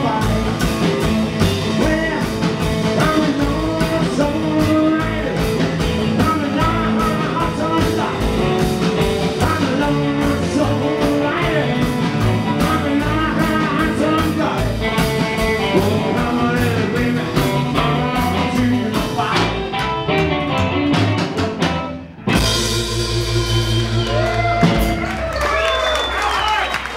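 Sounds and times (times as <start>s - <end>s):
rockabilly band playing: 0.0s - 26.9s.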